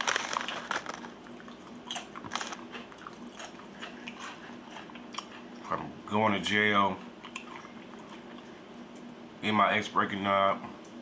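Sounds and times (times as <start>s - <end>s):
chewing crunchy potato chips: 0.0s - 5.7s, 7.2s - 8.6s.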